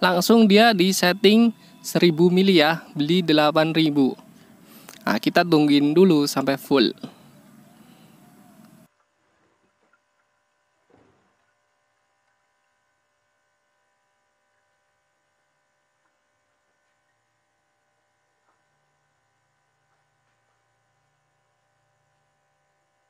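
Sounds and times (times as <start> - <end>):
low hiss: 0.0 - 8.9
faint steady hum: 0.0 - 23.0.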